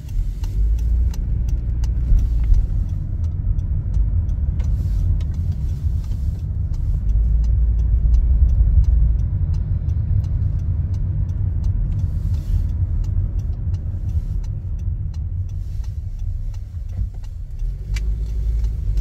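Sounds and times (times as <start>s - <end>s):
faint light ticks: 0.0s - 19.0s
road and engine rumble: 0.0s - 19.0s.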